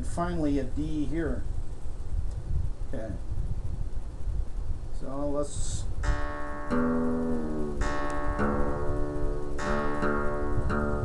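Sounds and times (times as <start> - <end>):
acoustic guitar string plucked: 6.0 - 11.0
repeating tuner reference note: 6.0 - 11.0.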